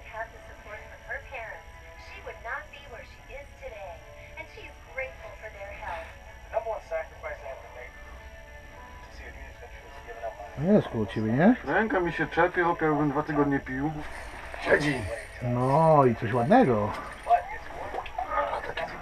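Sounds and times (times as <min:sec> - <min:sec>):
voices from television speaker: 0:00.0 - 0:08.0, 0:09.0 - 0:19.0
music from television speaker: 0:00.0 - 0:19.0.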